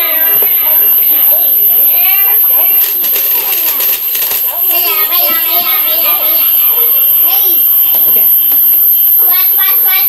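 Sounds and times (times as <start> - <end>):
voice sounds: 0.0 - 8.6, 9.2 - 10.0.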